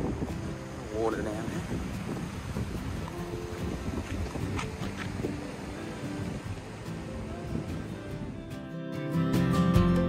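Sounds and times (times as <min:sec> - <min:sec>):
wind buffeting microphone: 0:00.0 - 0:08.6.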